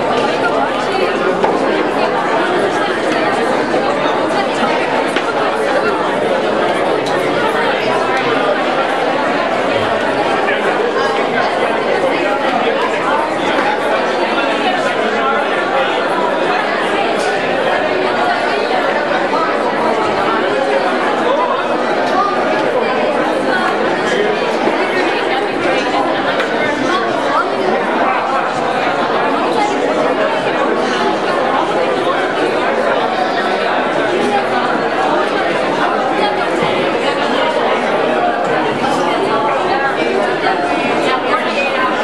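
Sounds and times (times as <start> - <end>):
crowd chatter: 0.0 - 42.0.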